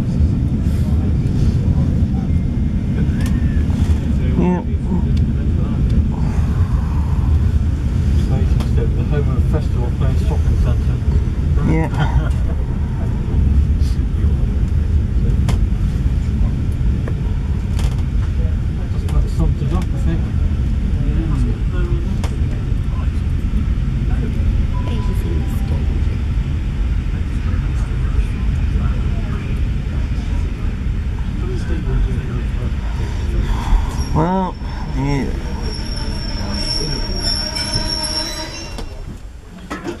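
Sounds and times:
train wheels rumbling on track: 0.0s - 40.0s
train wheels squealing: 33.6s - 39.2s.

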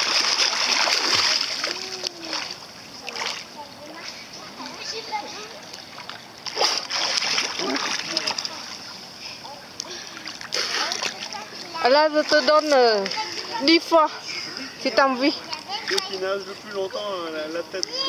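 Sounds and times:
kicking and swimming strokes: 0.0s - 13.9s
water splashing: 0.0s - 14.1s.

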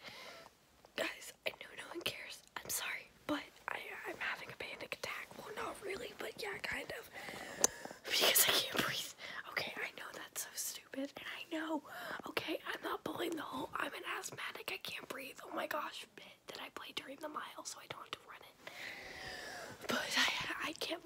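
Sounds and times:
woman whispering: 1.0s - 7.2s, 8.0s - 18.6s, 19.8s - 21.0s.

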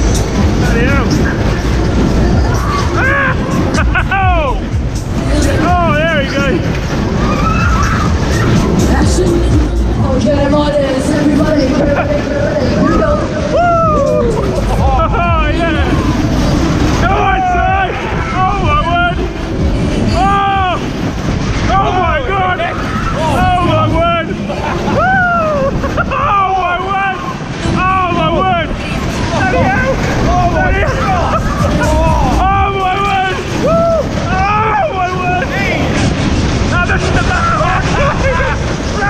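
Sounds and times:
riders whooping: 0.0s - 39.0s
wind rushing over microphone: 0.0s - 39.0s.

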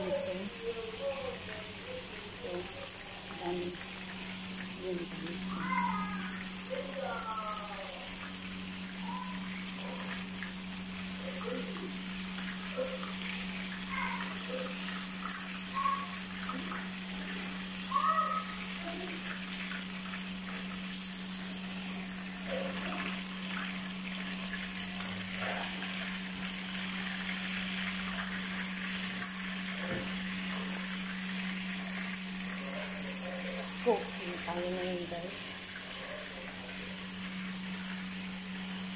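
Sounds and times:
fish sizzling in hot oil: 0.0s - 38.9s.

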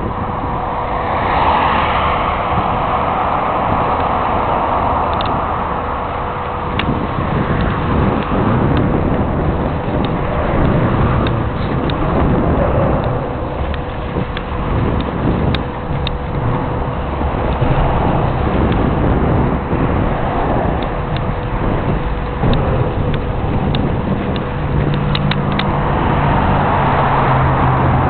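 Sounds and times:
bicycle rolling on pavement: 0.0s - 28.0s
wind on microphone: 0.0s - 28.0s.

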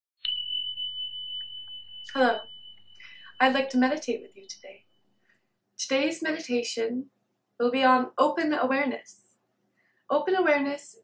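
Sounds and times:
bell-like ding: 0.2s - 5.2s
faint low hum: 1.7s - 5.0s.

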